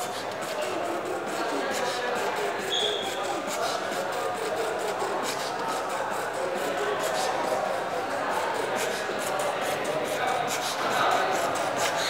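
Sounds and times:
high whistle-like tone: 2.7 - 3.1.

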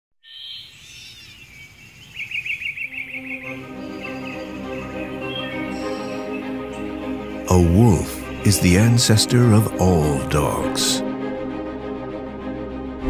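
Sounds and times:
bird trill: 0.2 - 8.9
birds singing and calling: 0.2 - 10.7
soft sustained music: 2.5 - 13.0.

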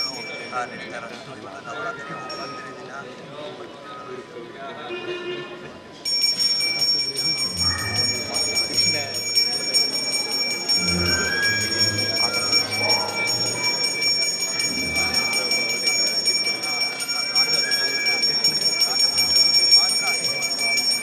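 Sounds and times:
hand bell ringing rapidly: 0.0 - 0.7, 6.0 - 21.0
voices: 0.0 - 21.0.

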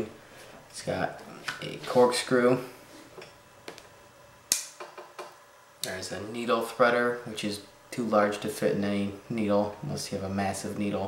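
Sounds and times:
multi-tool snapping on its spring: 4.5 - 5.0.

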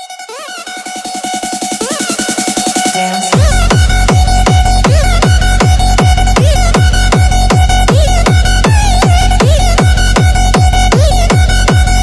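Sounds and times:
fast techno kick drum: 0.9 - 12.0.

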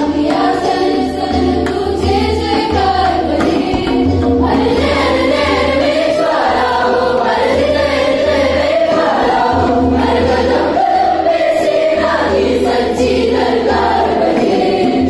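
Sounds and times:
girls singing in choir: 0.0 - 15.0
musical accompaniment: 0.0 - 15.0.

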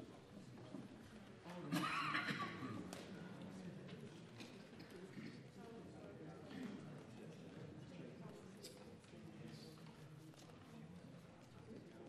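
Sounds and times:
murmur of conversation: 0.0 - 12.0.

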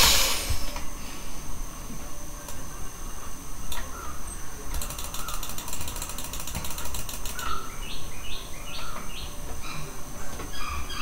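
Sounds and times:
mouse scroll wheel ticking: 4.8 - 7.5
birds chirping: 6.7 - 11.0.

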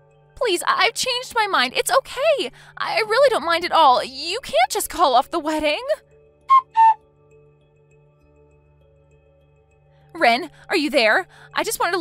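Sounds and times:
faint background music: 0.0 - 12.0
whistle-like tones: 6.5 - 7.0.

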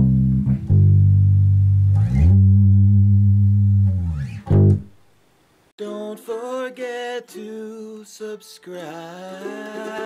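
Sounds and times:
electric bass sliding low note: 0.0 - 4.9.

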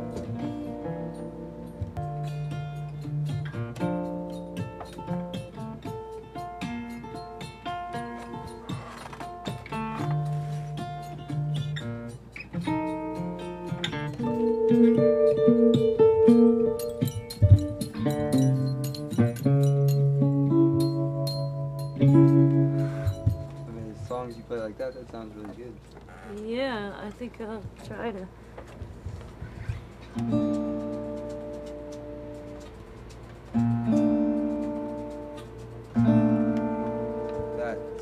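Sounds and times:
fingerpicked acoustic guitar: 0.0 - 38.0.

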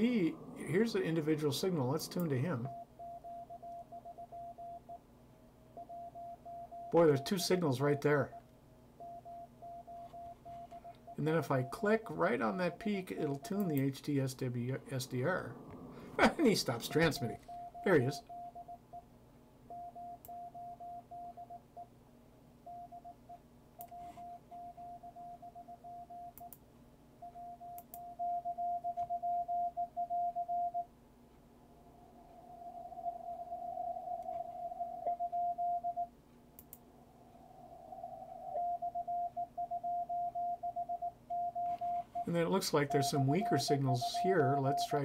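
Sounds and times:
morse code beep tone: 2.4 - 5.0, 5.8 - 7.3, 16.9 - 19.0, 19.7 - 21.6, 23.8 - 26.4, 27.2 - 30.8, 33.0 - 36.1, 38.5 - 45.0.

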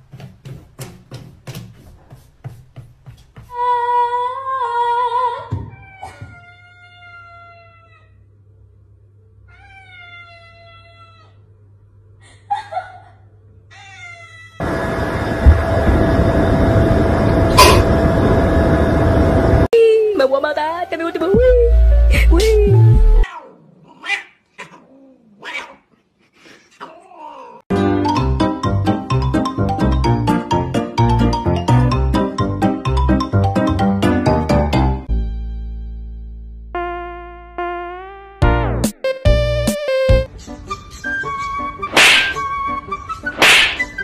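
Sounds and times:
cat meowing: 5.7 - 8.2, 9.5 - 11.4, 13.7 - 14.6
loud music with heavy bass: 38.4 - 40.3.

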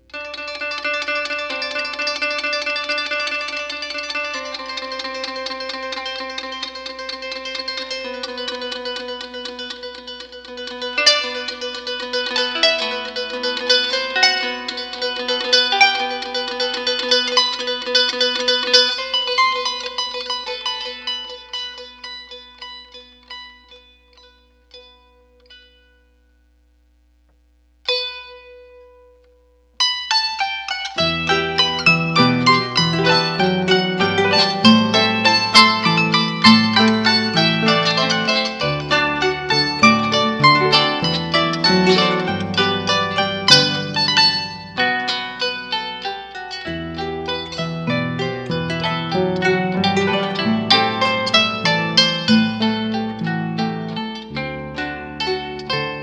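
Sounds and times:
harp duet: 30.0 - 56.0.

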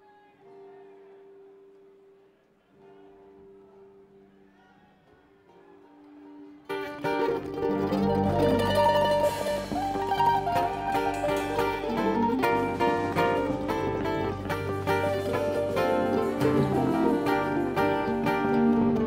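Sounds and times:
string band playing live: 6.6 - 19.0.

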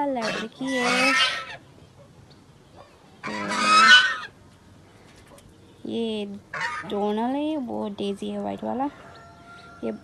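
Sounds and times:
goose honking: 0.2 - 1.6, 3.2 - 4.4, 6.5 - 7.0.

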